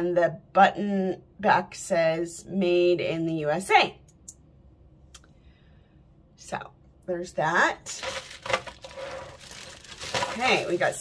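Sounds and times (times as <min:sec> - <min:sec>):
plastic bag crinkling: 0:07.9 - 0:11.0.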